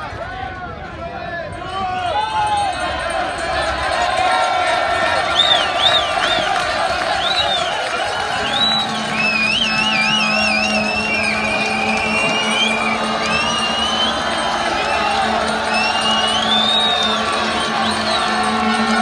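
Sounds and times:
crowd cheering: 0:00.0 - 0:19.0
shrill warbling whistles: 0:07.2 - 0:18.4
music from loudspeakers: 0:08.4 - 0:19.0.

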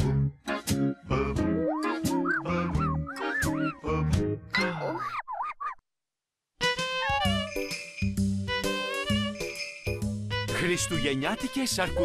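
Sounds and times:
high warbling voice-like sound: 0:01.2 - 0:05.6.

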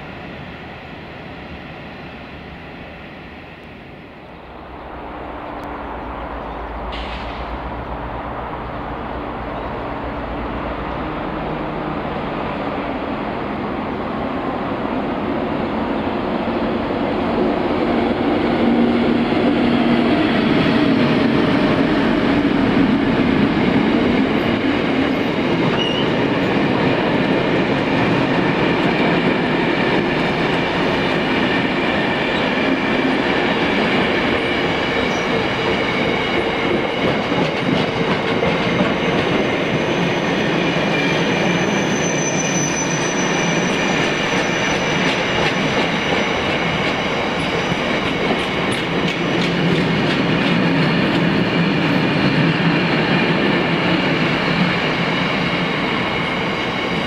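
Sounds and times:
diesel locomotive passing: 0:00.0 - 0:57.0
train wheels rumbling on rails: 0:00.0 - 0:57.0.

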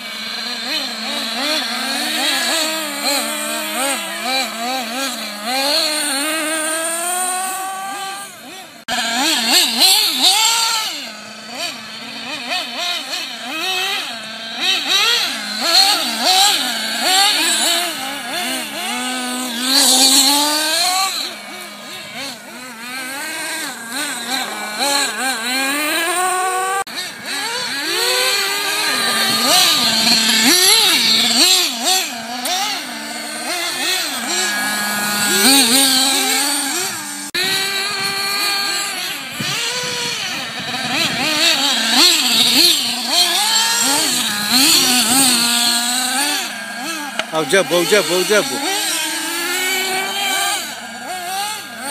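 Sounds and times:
small engines revving: 0:00.0 - 0:51.9.

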